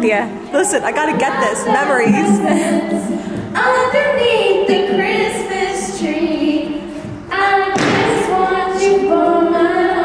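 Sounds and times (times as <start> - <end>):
two women singing: 0.0 - 10.0
thud-like burst: 7.7 - 8.3.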